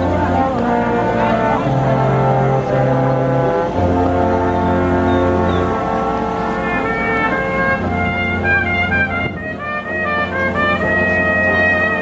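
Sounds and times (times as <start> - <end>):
brass ensemble playing: 0.0 - 12.0
tuba low notes: 0.0 - 12.0.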